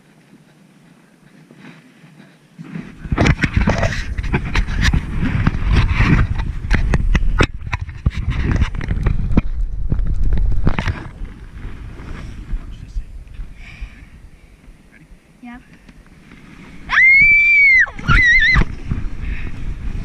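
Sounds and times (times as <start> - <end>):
sled scraping over snow: 0.0 - 13.1, 16.0 - 20.0.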